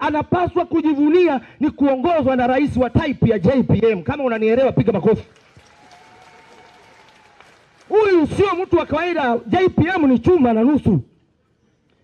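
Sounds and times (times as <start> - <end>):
audience applauding: 5.2 - 9.4.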